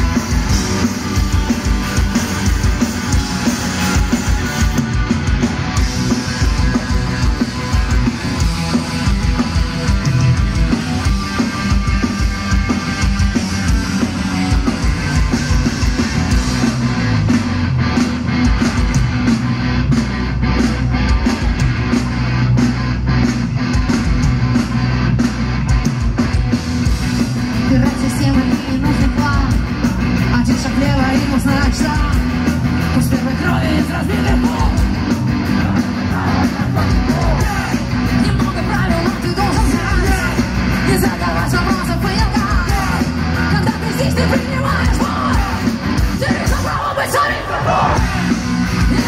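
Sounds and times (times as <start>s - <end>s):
electric guitars: 0.0s - 49.0s
live rock band playing: 0.0s - 49.0s
pounding drum beat: 0.0s - 49.0s.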